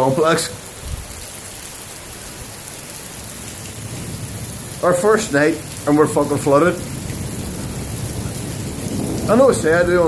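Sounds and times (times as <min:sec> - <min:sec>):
heavy rain falling: 0:00.0 - 0:10.0.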